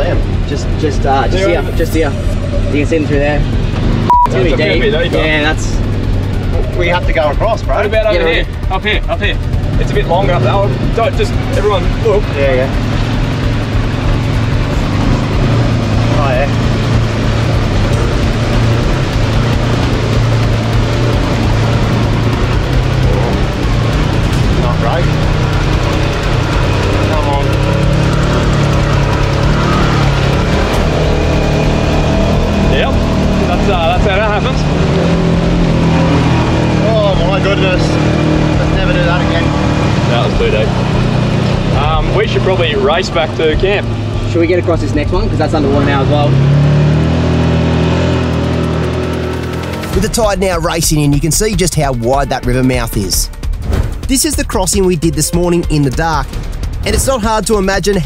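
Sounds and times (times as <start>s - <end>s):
quad engine running under load: 0.0s - 58.0s.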